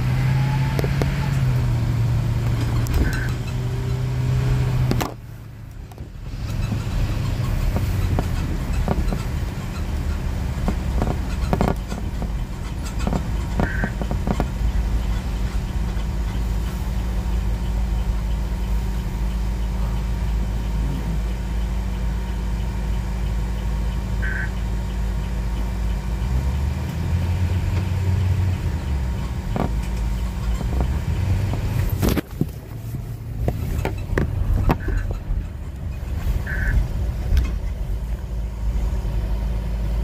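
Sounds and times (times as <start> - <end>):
car engine and tyre rumble: 0.0 - 40.0.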